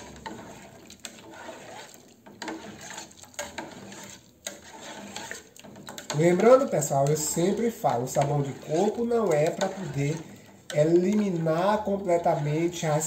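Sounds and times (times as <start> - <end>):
plastic spoon stirring water: 0.0 - 13.0.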